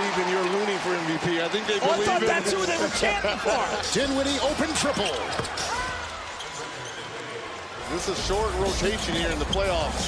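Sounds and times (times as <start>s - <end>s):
crowd noise: 0.0s - 10.0s
basketball court play sounds: 4.8s - 6.1s.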